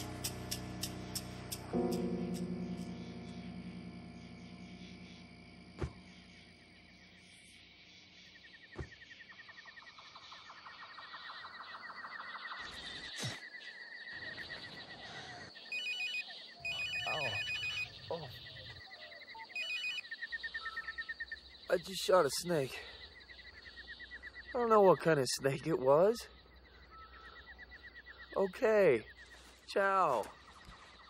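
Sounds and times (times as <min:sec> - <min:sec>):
mobile phone ringing: 0:15.7 - 0:17.9, 0:19.6 - 0:20.0
fast pulsing jungle trill: 0:16.7 - 0:18.2.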